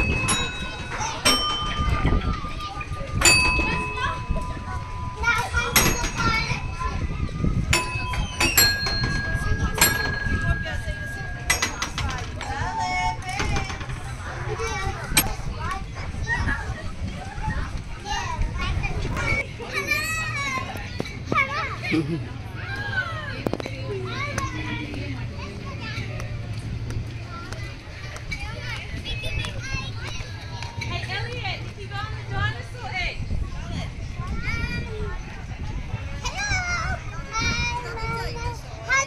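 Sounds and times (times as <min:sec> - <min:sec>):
children's voices playing: 0:00.0 - 0:39.0.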